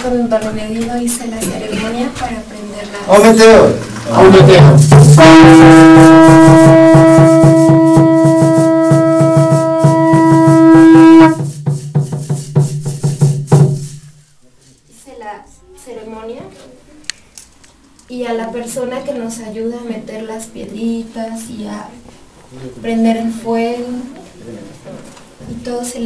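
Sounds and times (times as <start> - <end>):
rapid even beating: 3.4 - 14.2
horn long note: 4.2 - 11.4.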